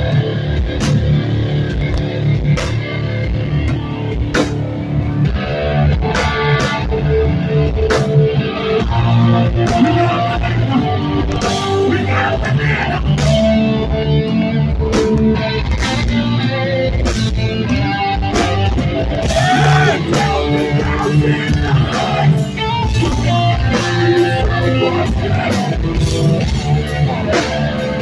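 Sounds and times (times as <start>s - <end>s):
distorted electric guitars: 0.0s - 28.0s
vocalist shouting into microphone: 19.3s - 21.9s.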